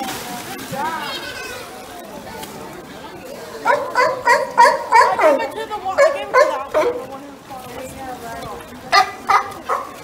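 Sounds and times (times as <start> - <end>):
sea lions barking: 3.6 - 7.1.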